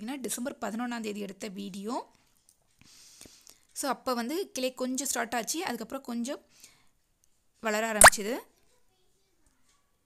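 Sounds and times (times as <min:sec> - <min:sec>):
sharp pop: 0:08.0 - 0:08.2.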